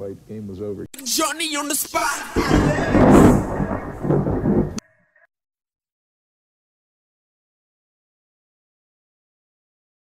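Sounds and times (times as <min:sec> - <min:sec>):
low thunder-like rumble: 0:02.5 - 0:04.8.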